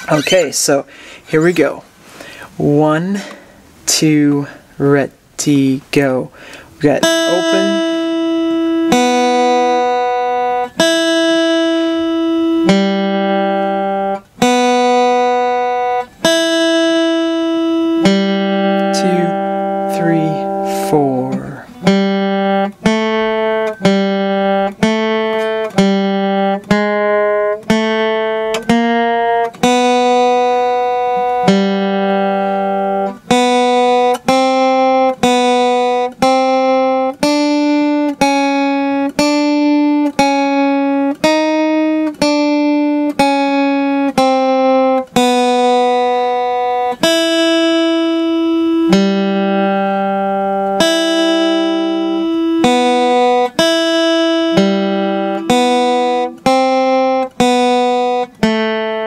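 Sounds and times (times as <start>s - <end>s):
guitar single notes picked slowly: 0.0s - 1.8s, 6.8s - 59.0s.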